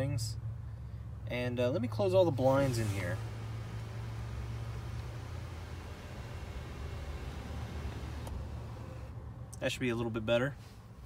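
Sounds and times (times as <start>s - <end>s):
car cabin low hum: 1.9s - 9.5s.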